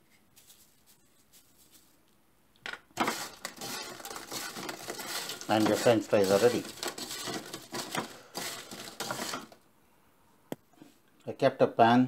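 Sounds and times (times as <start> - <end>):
fries rustling in metal strainer: 0.3 - 2.0, 3.0 - 9.6.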